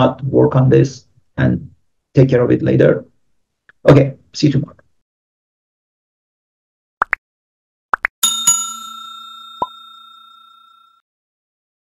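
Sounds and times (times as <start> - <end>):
bright bell ding: 8.2 - 11.0.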